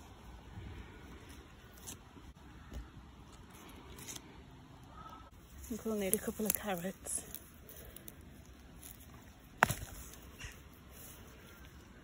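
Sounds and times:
rustling soil: 0.0 - 12.0
carrot root snapping: 8.8 - 10.5.

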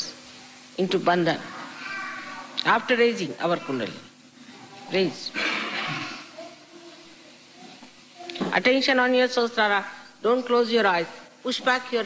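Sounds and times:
breathy hiss: 0.0 - 8.5
recording hiss: 0.0 - 12.0.

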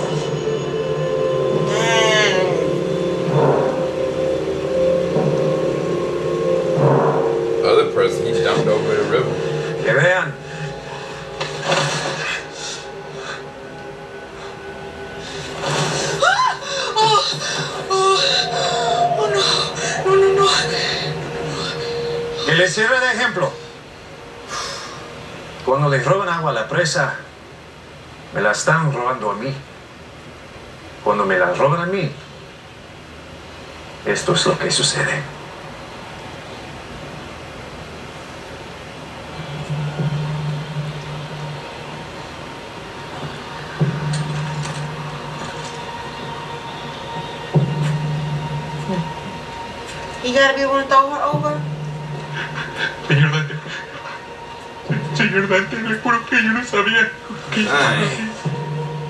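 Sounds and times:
low droning tone: 0.0 - 16.3, 17.0 - 24.5, 39.2 - 59.0
television music score: 0.0 - 59.0.

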